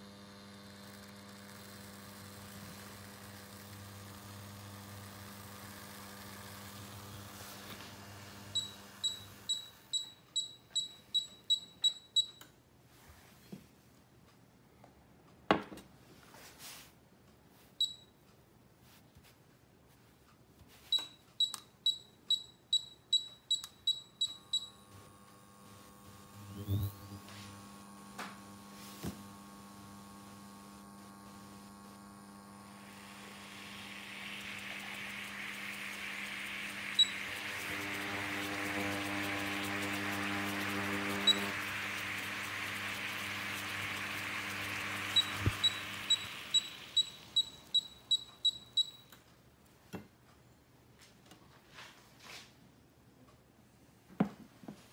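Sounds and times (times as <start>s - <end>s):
induction hob humming: 0.0s - 12.3s, 21.9s - 49.3s
cooktop touch keys beeping: 8.5s - 12.6s, 17.8s - 18.2s, 20.8s - 24.8s, 33.5s - 49.2s
water heating hiss: 27.1s - 48.1s.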